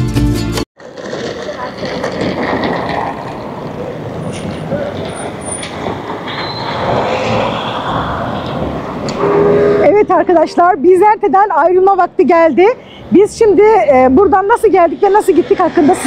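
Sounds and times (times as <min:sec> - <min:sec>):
street traffic: 0:00.0 - 0:16.0.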